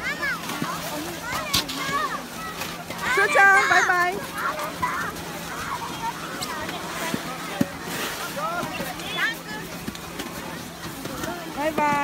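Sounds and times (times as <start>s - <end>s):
children calling and chattering: 0.0s - 12.0s
crowd hubbub: 0.0s - 12.0s.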